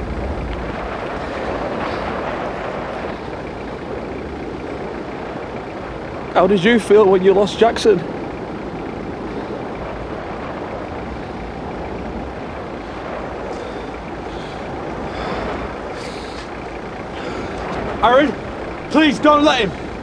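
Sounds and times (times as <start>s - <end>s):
vehicle engine idling: 0.0s - 20.0s.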